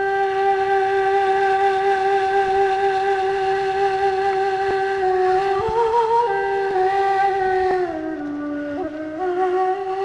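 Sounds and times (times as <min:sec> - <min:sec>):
wind instrument holding long note: 0:00.0 - 0:10.0.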